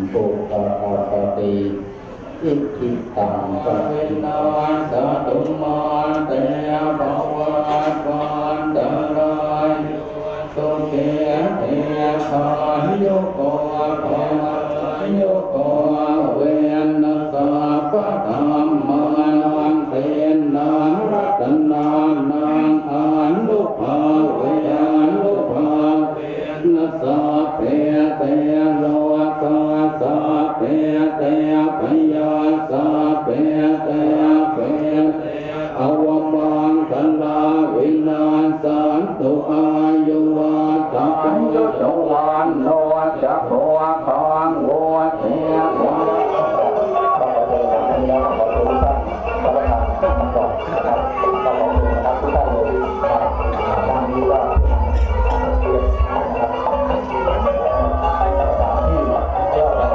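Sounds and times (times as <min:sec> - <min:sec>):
monks chanting in unison: 0:00.0 - 0:59.9.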